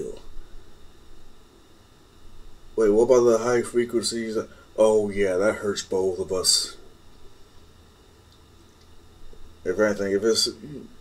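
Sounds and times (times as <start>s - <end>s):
faint background hiss: 0.0s - 11.0s
low hum: 0.0s - 11.0s.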